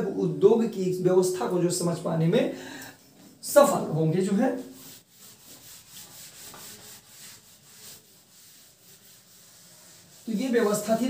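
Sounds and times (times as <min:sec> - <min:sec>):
eraser swishing on whiteboard: 0:04.6 - 0:11.0.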